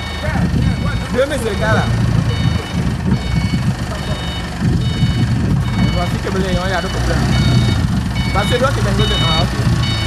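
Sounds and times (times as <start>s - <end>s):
forklift engine running: 0.0s - 10.0s
forklift warning beeps: 0.0s - 10.0s.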